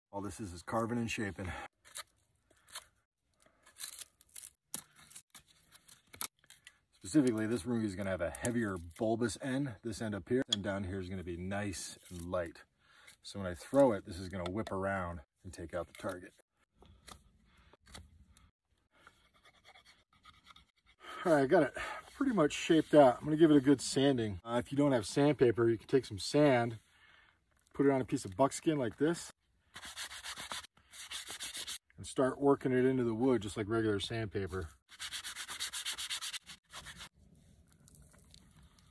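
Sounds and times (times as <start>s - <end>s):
sand scratching on wood: 29.8s - 31.8s, 34.9s - 37.1s.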